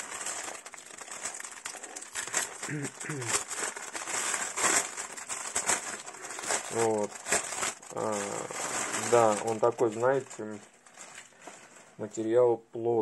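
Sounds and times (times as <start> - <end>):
plastic bag crinkling: 0.0 - 12.3.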